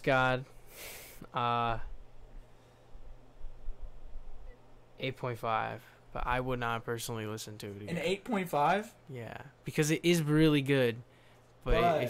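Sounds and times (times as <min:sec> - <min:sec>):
low electrical hum: 0:00.0 - 0:12.0
person speaking: 0:11.6 - 0:12.0.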